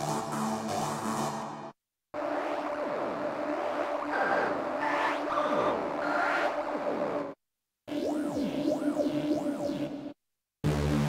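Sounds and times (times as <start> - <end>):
higher synthesizer tones: 2.2 - 10.2.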